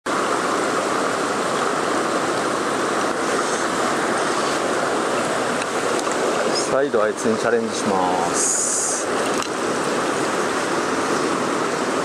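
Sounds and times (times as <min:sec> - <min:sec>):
stream running over rocks: 0:00.1 - 0:12.0.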